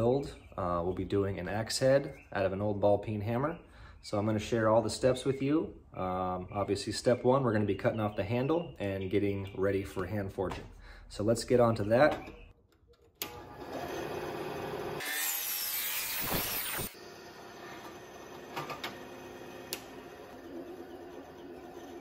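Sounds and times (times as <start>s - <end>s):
bandsaw cutting wood: 13.2s - 22.0s.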